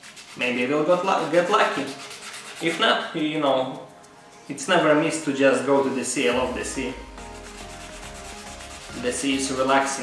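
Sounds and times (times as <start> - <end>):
sanding on sandpaper: 0.0 - 3.1, 7.1 - 10.0.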